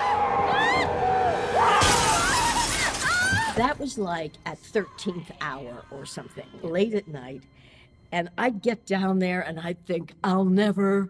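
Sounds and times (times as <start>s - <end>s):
woman screaming: 0.0s - 3.7s
car window glass shattering: 1.8s - 3.6s.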